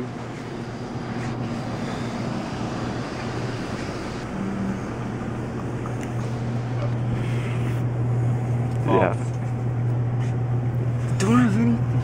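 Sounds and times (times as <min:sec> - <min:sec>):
low machine hum: 0:00.0 - 0:12.0.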